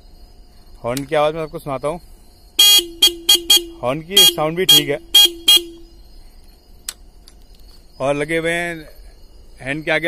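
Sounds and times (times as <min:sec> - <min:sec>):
motorcycle horn beeps: 0:02.6 - 0:06.0.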